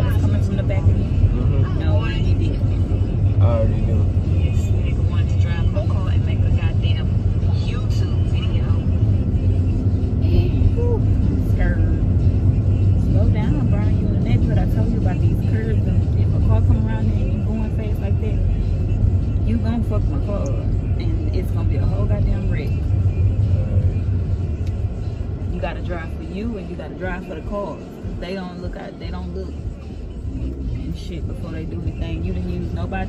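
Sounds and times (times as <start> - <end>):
car engine and tyres rumbling: 0.0 - 33.0.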